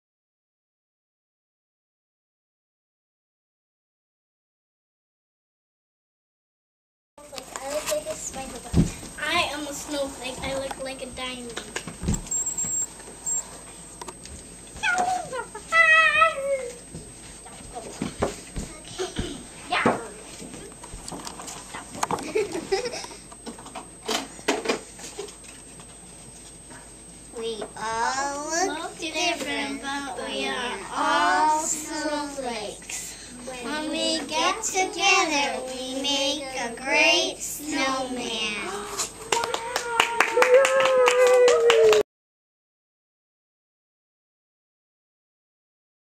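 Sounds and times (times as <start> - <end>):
taps and rustles: 7.3 - 9.2
children shuffling about: 7.4 - 13.4, 14.8 - 23.0
hand clapping: 39.3 - 42.0.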